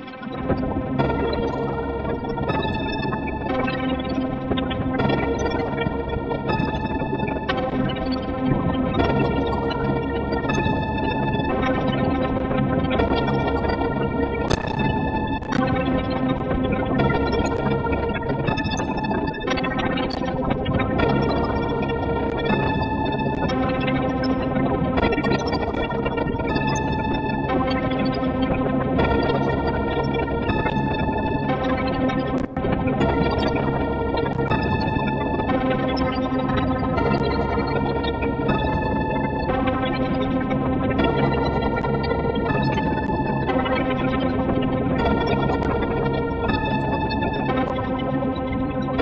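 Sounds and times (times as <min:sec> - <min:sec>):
electronic synthesizer music: 0:13.5 - 0:24.6.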